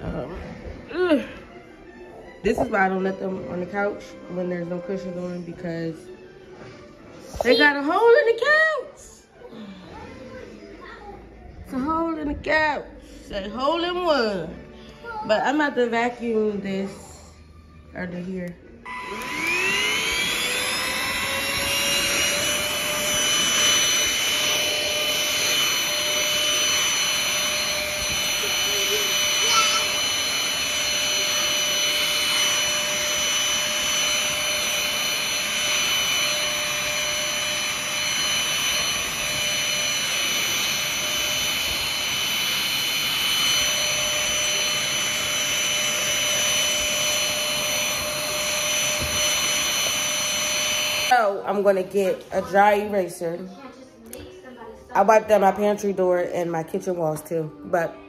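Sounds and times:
handheld vacuum motor whine: 1.8s - 8.0s, 18.9s - 51.2s.

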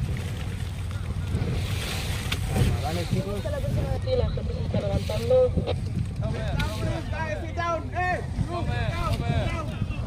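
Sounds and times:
boat engines rumbling: 0.0s - 10.0s.

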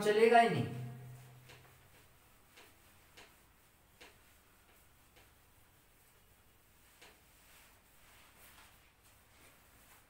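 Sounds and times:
duster wiping whiteboard: 0.0s - 10.0s.

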